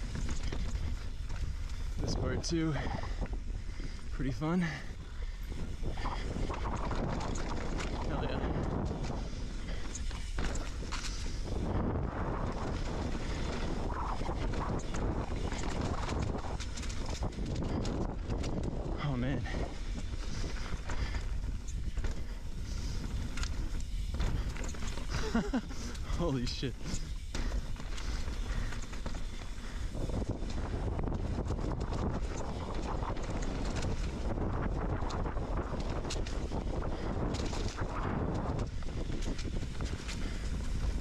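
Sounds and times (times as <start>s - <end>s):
bike rattling over bumps: 0.0s - 41.0s
bike tyres rolling over dirt: 0.0s - 41.0s
wind on microphone: 0.0s - 41.0s.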